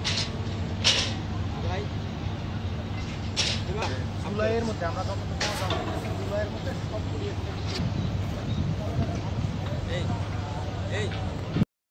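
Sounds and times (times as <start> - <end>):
boat engine droning: 0.0 - 11.6.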